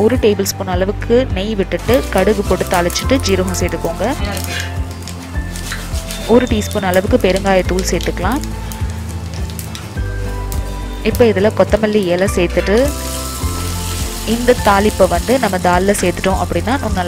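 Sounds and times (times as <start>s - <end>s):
background music with singing: 0.0s - 17.0s
seeds sizzling in hot oil: 1.8s - 17.0s.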